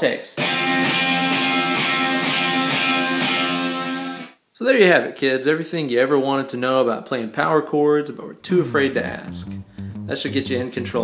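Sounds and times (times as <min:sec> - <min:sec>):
electric guitar power chord: 0:00.4 - 0:04.3, 0:08.8 - 0:11.0.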